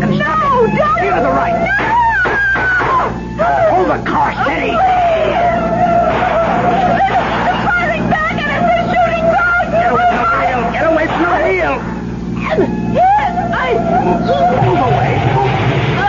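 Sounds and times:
car engine running: 0.0 - 16.0
overlapping voices: 0.0 - 16.0
steady held tone: 0.0 - 16.0.

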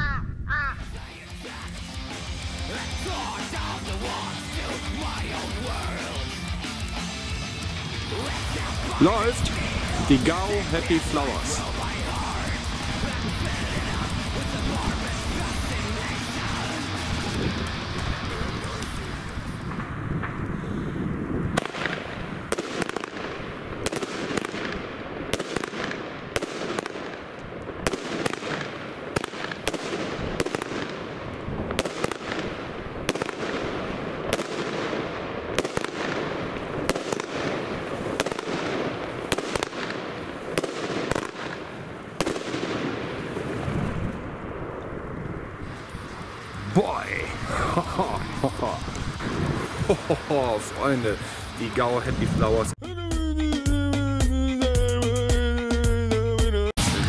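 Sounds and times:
firework shells bursting: 21.5 - 44.0.

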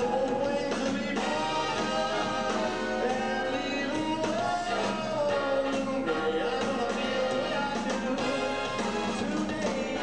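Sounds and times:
big band swing music: 0.0 - 10.0.

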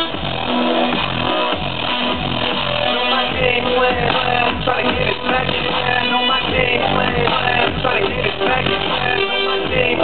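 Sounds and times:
distorted synth bass sliding down: 0.0 - 10.0
loud electronic dance music: 0.0 - 10.0.

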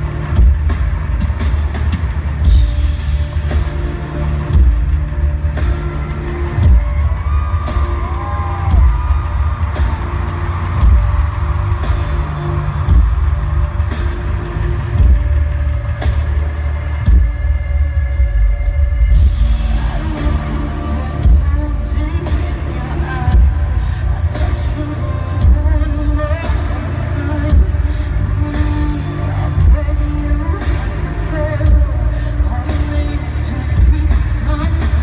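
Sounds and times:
distorted bass beat: 0.0 - 25.8
live pop concert music: 0.0 - 35.0.

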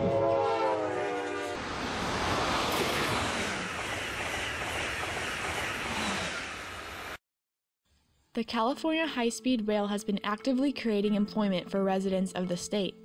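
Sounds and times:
train horn chord: 0.0 - 1.8
train wheels rushing on rail: 1.5 - 7.2.

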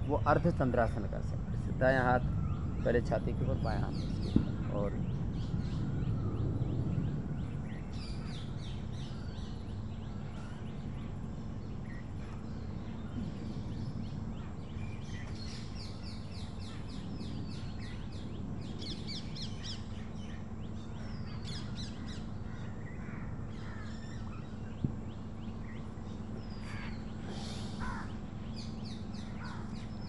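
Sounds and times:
birds chirping: 0.0 - 30.0
steady low hum: 0.0 - 30.0.

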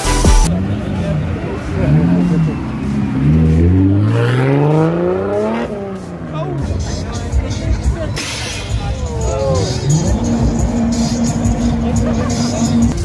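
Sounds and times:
car engine revving: 0.0 - 13.0.

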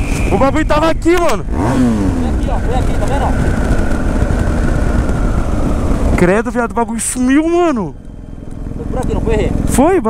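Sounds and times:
motorcycle engine running: 0.0 - 10.0
wind rumble on microphone: 0.0 - 10.0
faint steady whine: 2.4 - 10.0.

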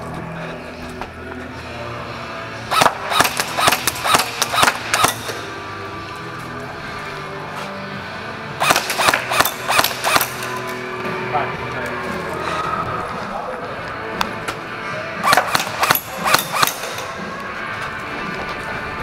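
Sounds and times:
airsoft gun firing shots: 2.7 - 5.5, 8.6 - 10.7, 15.2 - 17.2.

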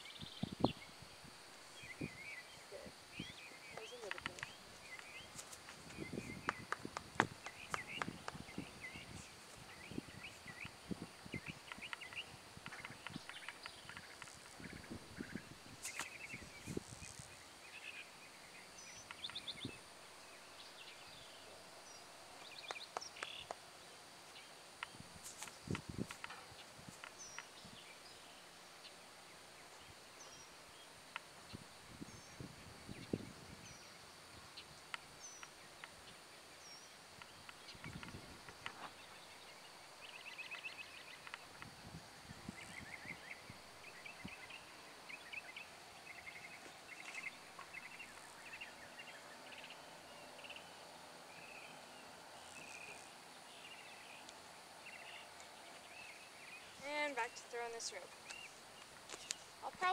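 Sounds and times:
birds chirping: 0.0 - 41.7, 42.4 - 59.9
rustling: 3.8 - 8.0.

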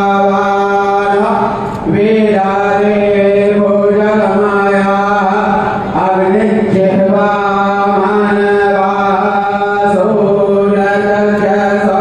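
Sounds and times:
person chanting long held notes: 0.0 - 12.0.

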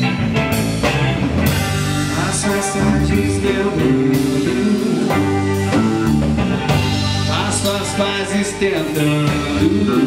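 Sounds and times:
band playing pop rock: 0.0 - 10.0.

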